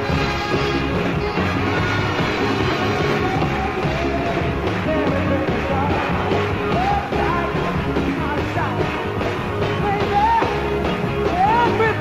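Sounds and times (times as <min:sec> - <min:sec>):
live rock music: 0:00.0 - 0:12.0.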